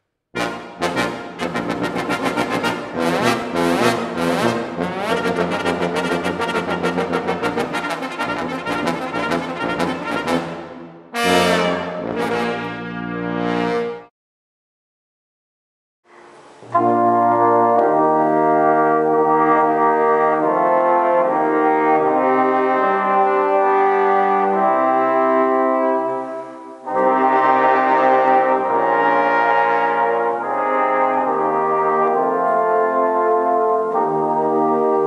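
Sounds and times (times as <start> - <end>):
brass quintet playing: 0.4 - 14.1, 16.6 - 35.0.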